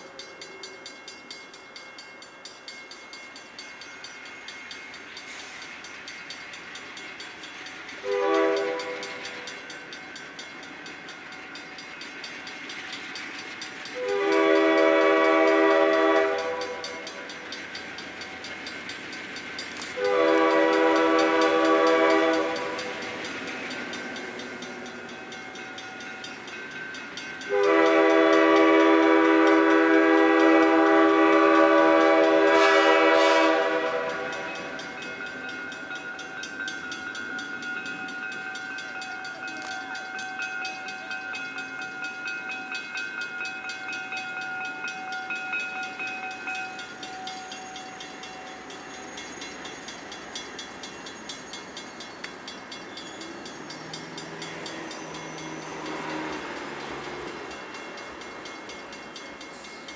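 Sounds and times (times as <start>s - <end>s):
locomotive air horn blasts: 8.0s - 9.0s, 14.0s - 16.8s, 20.0s - 22.8s, 27.5s - 34.5s.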